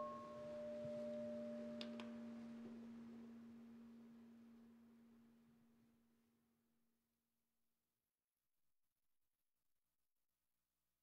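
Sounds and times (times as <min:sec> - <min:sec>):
meditation bell ringing: 0:00.0 - 0:03.1.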